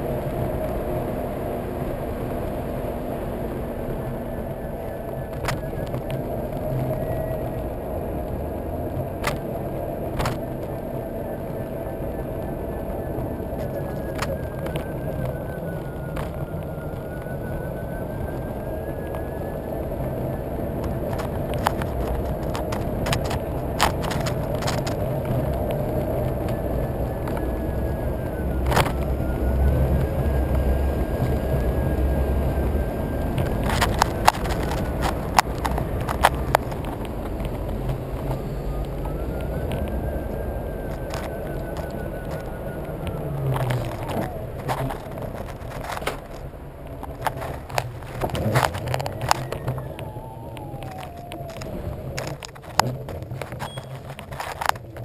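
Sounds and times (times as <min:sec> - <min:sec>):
tyre rumble on asphalt: 0:00.0 - 0:55.0.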